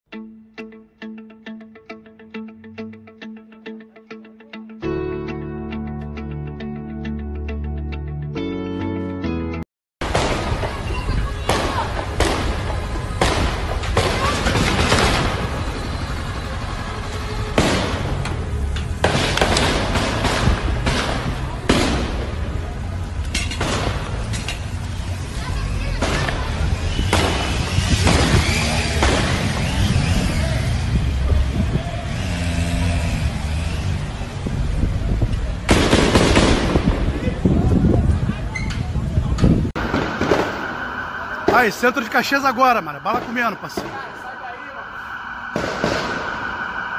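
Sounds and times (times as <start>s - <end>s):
gunshots and bursts: 11.5s - 15.6s, 19.0s - 22.2s, 35.7s - 36.9s
steady low rumble: 39.4s - 46.9s.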